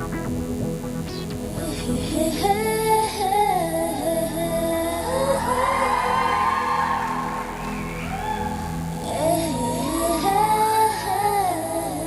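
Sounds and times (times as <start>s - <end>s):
woman singing high: 1.6s - 7.2s, 9.0s - 12.0s.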